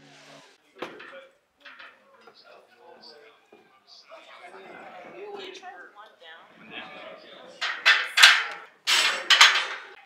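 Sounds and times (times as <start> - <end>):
metal clanks from squat rack: 7.6 - 10.0.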